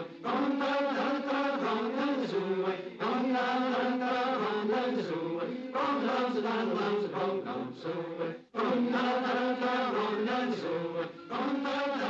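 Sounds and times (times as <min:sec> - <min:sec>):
men chanting in long held notes: 0:00.0 - 0:12.0.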